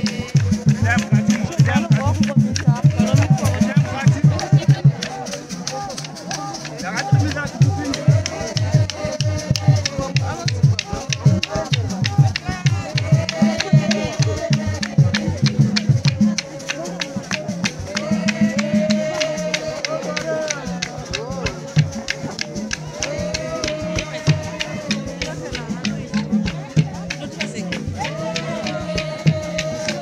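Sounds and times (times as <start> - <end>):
congregation singing: 0.0 - 30.0
deep drum beats: 0.0 - 30.0
shaken rattles: 0.0 - 30.0.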